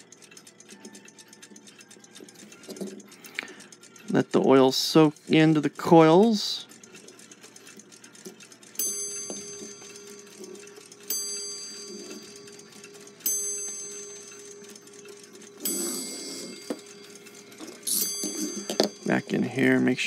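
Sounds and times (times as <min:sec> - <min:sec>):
clock striking: 0:00.0 - 0:20.0.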